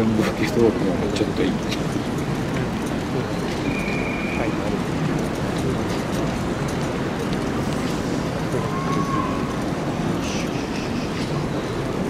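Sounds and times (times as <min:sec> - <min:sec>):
low rumbling background noise: 0:00.0 - 0:12.0
faint high-pitched sounds: 0:08.2 - 0:11.4.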